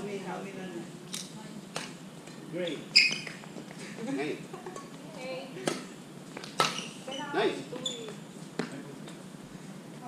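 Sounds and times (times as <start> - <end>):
racket hitting shuttlecock: 5.6 - 6.8.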